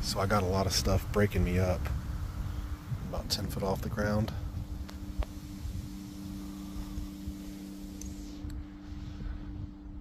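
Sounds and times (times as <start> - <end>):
faint steady hum: 0.0 - 10.0
wind buffeting microphone: 0.0 - 10.0.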